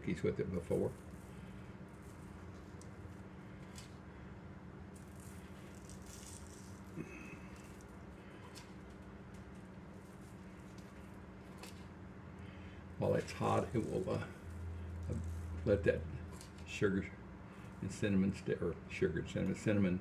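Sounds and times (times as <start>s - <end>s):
steady low hum: 0.0s - 20.0s
sugar granules pattering: 0.2s - 12.4s, 13.0s - 16.7s.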